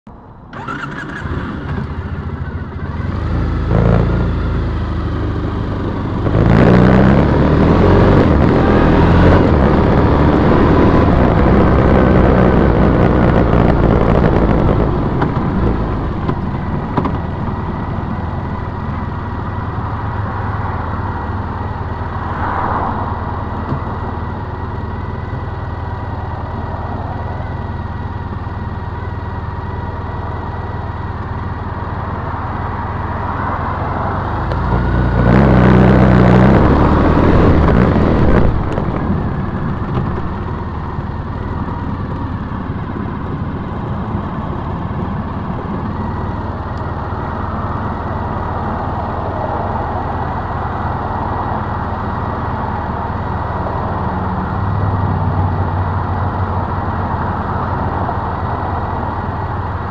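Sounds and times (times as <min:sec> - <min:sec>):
motorcycle engine accelerating: 0:00.5 - 0:59.9.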